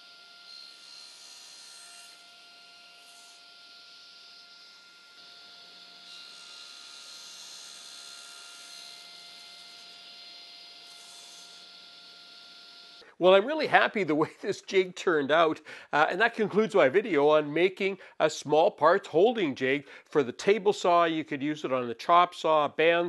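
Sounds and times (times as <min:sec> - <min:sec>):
table saw cutting wood: 0:00.0 - 0:14.8.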